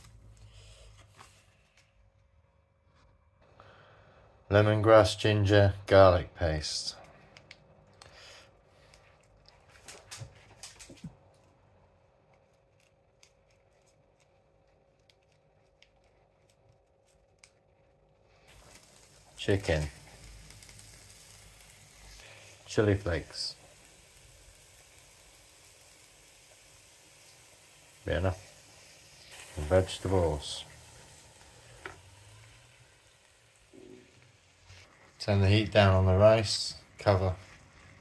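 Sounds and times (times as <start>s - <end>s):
faint steady hum: 0.0s - 38.0s
plastic crackles: 7.0s - 26.1s
plastic sachet crinkling: 12.2s - 22.1s
chicken sizzling in a pan: 18.4s - 38.0s.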